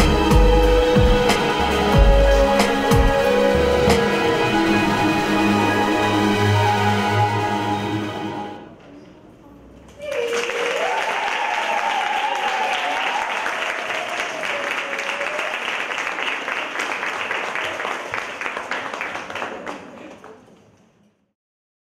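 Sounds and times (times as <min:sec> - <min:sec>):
dance music: 0:00.0 - 0:08.6
person cheering: 0:10.0 - 0:15.7
audience applauding: 0:10.0 - 0:20.8.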